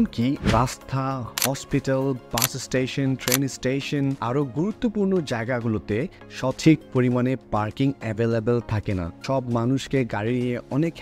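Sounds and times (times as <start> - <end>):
background music: 0.0 - 11.0
man talking: 0.0 - 11.0.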